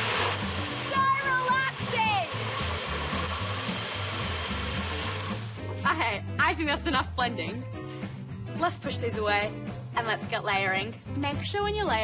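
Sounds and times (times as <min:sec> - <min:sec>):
blenders running: 0:00.0 - 0:05.7
background music: 0:00.0 - 0:12.0.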